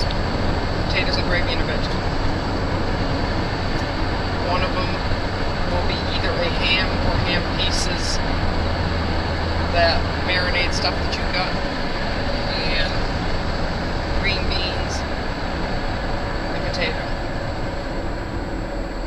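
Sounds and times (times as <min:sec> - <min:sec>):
low engine drone: 0:00.0 - 0:19.0.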